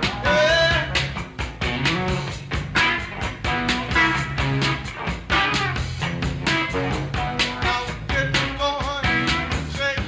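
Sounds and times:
live blues-rock band: 0.0 - 10.0.

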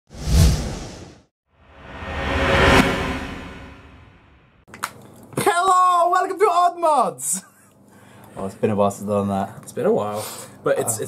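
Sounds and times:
whoosh sound effect: 0.1 - 4.5.

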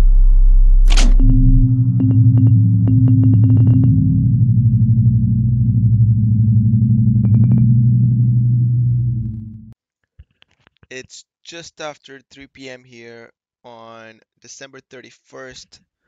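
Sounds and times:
low electronic drone: 0.0 - 9.8.

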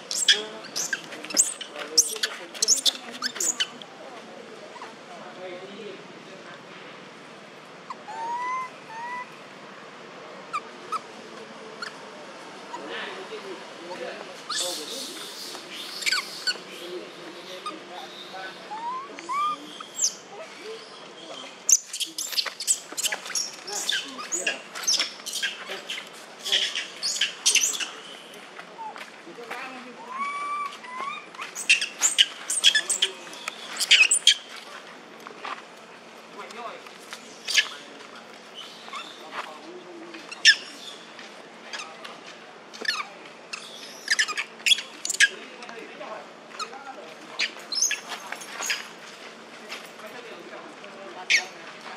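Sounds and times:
macaques squeaking and shrieking: 0.0 - 3.8, 7.9 - 9.4, 10.5 - 11.1, 11.8 - 12.9, 13.9 - 21.0, 21.6 - 28.1, 28.8 - 29.0, 30.0 - 34.9, 37.3 - 37.9, 38.6 - 39.2, 40.2 - 41.0, 42.7 - 45.4, 47.4 - 49.0, 51.2 - 51.6
monkey coo calls: 0.0 - 3.8, 7.9 - 9.4, 11.8 - 12.9, 13.9 - 21.0, 21.7 - 28.0, 28.7 - 29.0, 30.0 - 34.5, 37.4 - 37.9, 40.2 - 40.9, 42.8 - 45.3, 47.4 - 48.9
sharp high squeaks: 0.1 - 3.8, 30.6 - 34.5, 47.4 - 49.0.

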